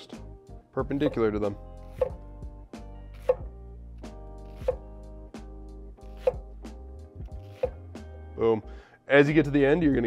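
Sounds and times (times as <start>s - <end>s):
background music: 0.0s - 10.0s
knife chopping onion on board: 1.9s - 2.2s, 3.2s - 3.5s, 4.6s - 4.9s, 6.2s - 6.4s, 7.5s - 7.8s.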